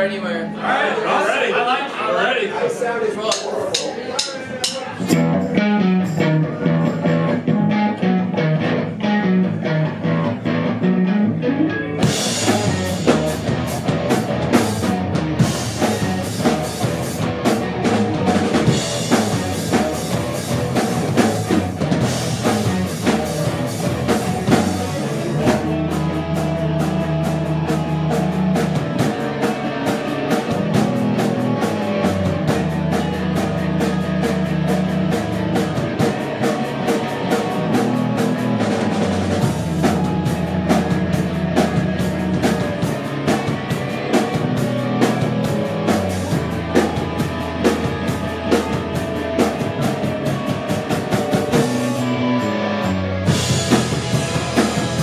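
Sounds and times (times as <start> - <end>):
live rock band playing: 3.2 - 55.0.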